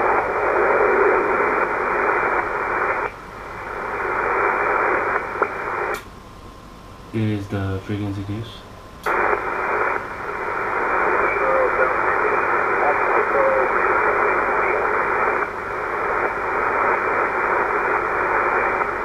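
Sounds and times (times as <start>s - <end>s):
faint garbled radio voices: 0.0s - 6.0s, 7.1s - 19.0s
radio static rush: 0.0s - 6.0s, 9.1s - 19.0s.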